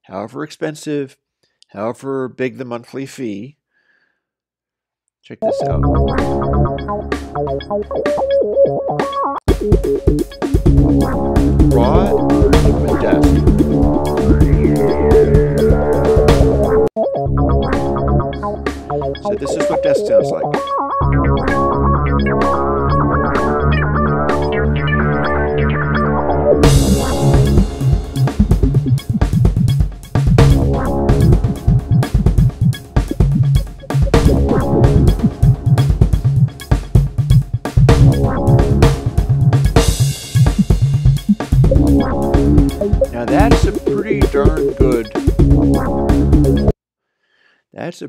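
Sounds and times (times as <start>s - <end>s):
sustained synth chords: 5.7s - 7.1s, 10.8s - 19.3s, 30.4s - 32.6s, 34.1s - 35.8s, 37.9s - 39.5s, 41.6s - 46.7s
drum kit beat: 8.9s - 16.9s, 18.4s - 20.8s, 26.6s - 46.7s.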